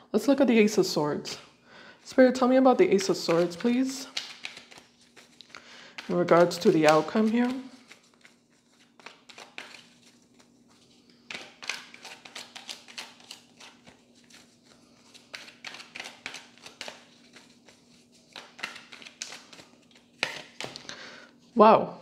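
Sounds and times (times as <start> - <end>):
cards being shuffled: 2.9 - 20.9.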